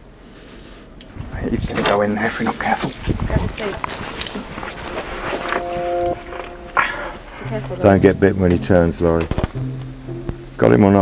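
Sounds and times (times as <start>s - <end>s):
scuffling: 1.7s - 7.9s.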